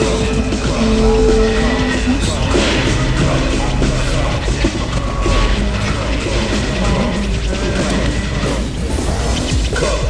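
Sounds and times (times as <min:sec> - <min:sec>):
high droning tone: 0:00.6 - 0:06.3
low droning tone: 0:00.7 - 0:06.3
dense electronic noise bed: 0:00.8 - 0:07.4.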